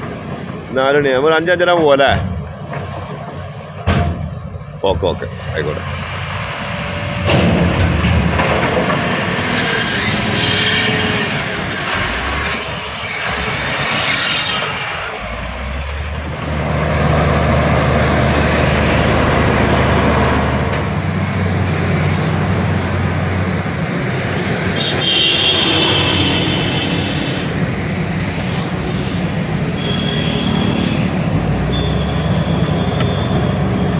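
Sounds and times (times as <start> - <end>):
earthmoving machine diesel engines: 0.0 - 33.9.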